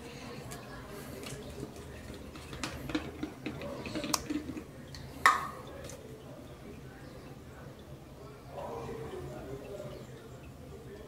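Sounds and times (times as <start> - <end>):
plastic bottle clicks and knocks: 2.3 - 4.6.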